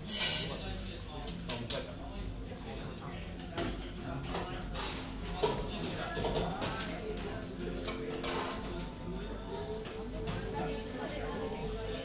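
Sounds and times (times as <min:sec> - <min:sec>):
dishes and cutlery clinking: 0:00.0 - 0:00.7, 0:03.5 - 0:08.8
people talking: 0:00.4 - 0:12.0.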